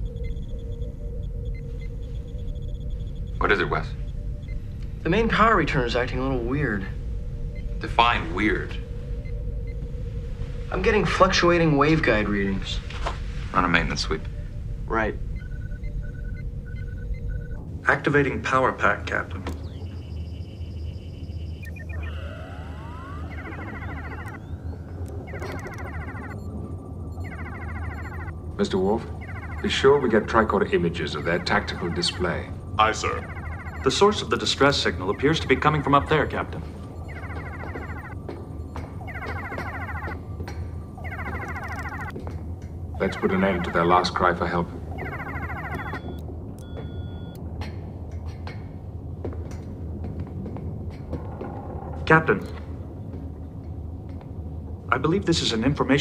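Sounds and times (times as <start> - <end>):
warbling electronic beeps: 0.0 - 9.8, 13.9 - 17.6, 19.0 - 42.2, 43.0 - 47.4
low electronic hum: 0.0 - 55.8
soft background music: 0.0 - 56.0
rising electronic whine: 19.1 - 30.6, 31.2 - 42.2, 44.9 - 47.4.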